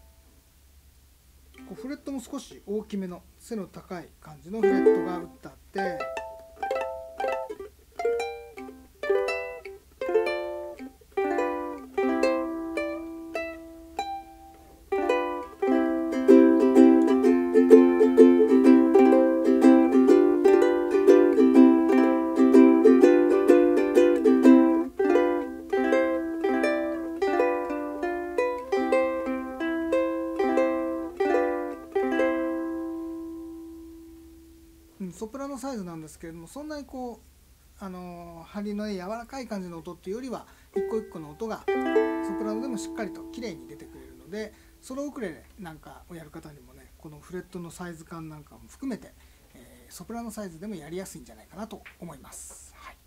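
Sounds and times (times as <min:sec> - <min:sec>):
ukulele playing: 0:01.6 - 0:01.9, 0:04.6 - 0:35.0, 0:40.8 - 0:45.4.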